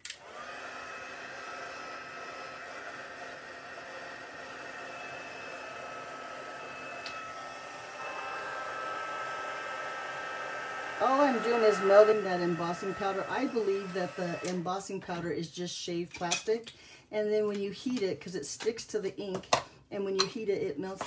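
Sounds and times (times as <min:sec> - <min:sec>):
heat gun blowing with faint whine: 0:01.3 - 0:14.6
heat gun switch click: 0:07.0 - 0:07.2.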